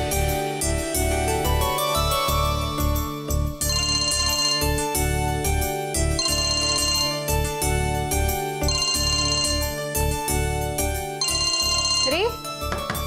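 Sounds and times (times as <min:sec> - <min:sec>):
phone ringtone melody: 0:01.5 - 0:13.0.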